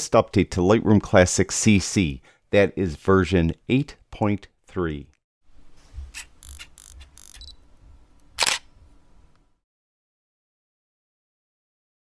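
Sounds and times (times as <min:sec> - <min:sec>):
camera clicks and whirring: 0:06.1 - 0:07.6, 0:08.3 - 0:08.7
camera shutter click: 0:06.2 - 0:07.5, 0:08.4 - 0:08.7.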